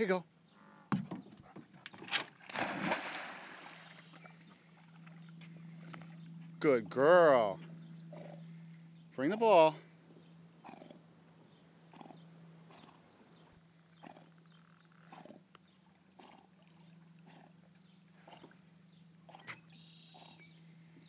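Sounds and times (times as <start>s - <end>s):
steady low hum: 0.1s - 21.0s.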